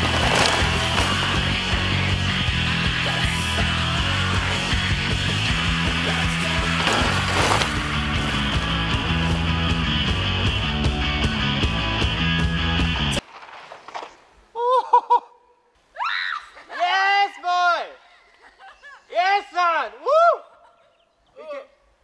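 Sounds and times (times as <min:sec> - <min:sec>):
rock music: 0:00.0 - 0:13.2
person yelling whooping calls: 0:20.0 - 0:20.6.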